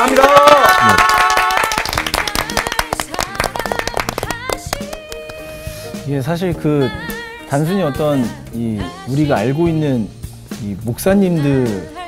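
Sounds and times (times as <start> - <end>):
people applauding: 0.0 - 5.4
soft music with sustained tones: 1.0 - 12.0.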